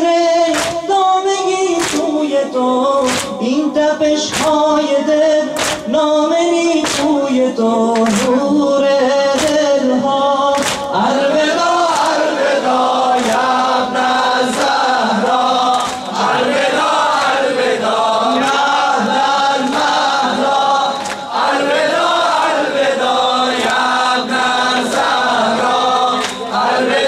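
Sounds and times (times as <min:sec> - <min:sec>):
men chanting a lament: 0:00.0 - 0:27.0
hands slapping chests: 0:00.5 - 0:00.9, 0:01.8 - 0:02.2, 0:03.0 - 0:03.4, 0:04.3 - 0:04.7, 0:05.5 - 0:05.9, 0:06.8 - 0:07.2, 0:08.0 - 0:08.4, 0:09.4 - 0:09.7, 0:10.5 - 0:11.0, 0:11.9 - 0:12.3, 0:13.1 - 0:13.8, 0:14.4 - 0:17.5, 0:18.4 - 0:22.5, 0:23.5 - 0:27.0.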